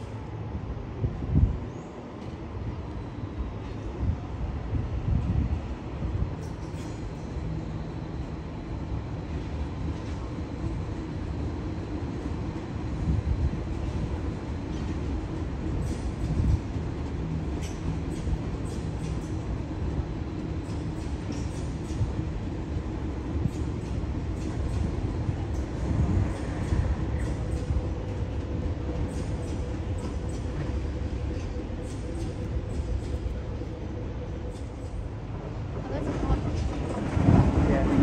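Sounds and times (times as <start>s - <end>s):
train rumble and motor hum: 0.0s - 38.0s.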